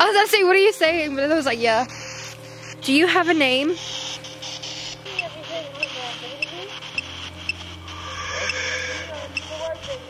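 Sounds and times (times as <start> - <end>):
electronic device beeping: 1.0 - 10.0
steady hum: 1.0 - 10.0.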